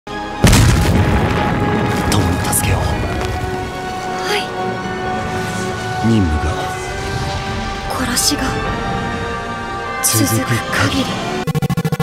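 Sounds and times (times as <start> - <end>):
orchestral music: 0.1 - 11.5
explosion boom: 0.4 - 3.7.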